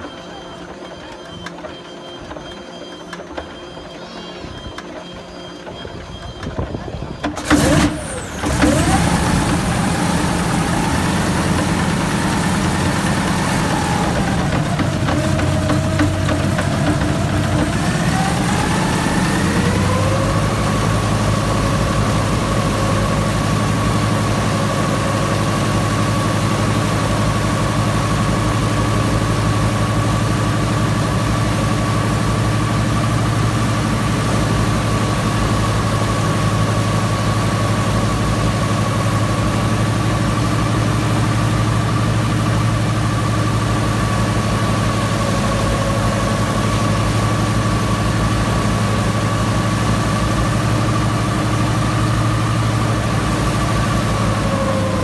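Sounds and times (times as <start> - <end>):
radial aircraft engine running: 0.0 - 55.0.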